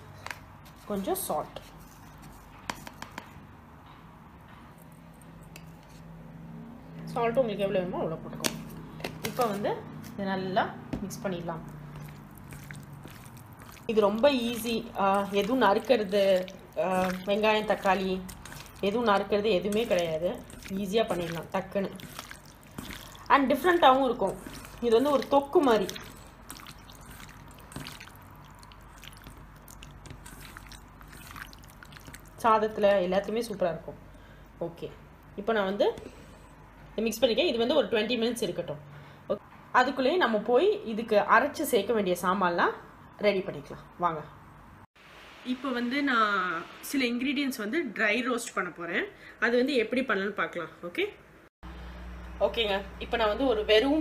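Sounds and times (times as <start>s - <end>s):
faint squelching: 11.0s - 33.6s.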